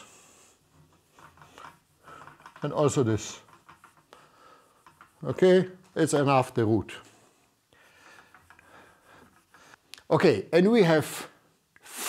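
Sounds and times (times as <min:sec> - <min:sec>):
wiping marker off whiteboard: 0:00.9 - 0:04.1, 0:04.7 - 0:05.8.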